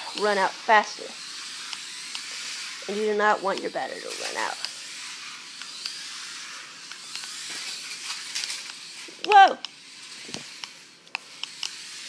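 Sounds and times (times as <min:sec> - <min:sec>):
toy car motors whirring: 0:00.0 - 0:12.0.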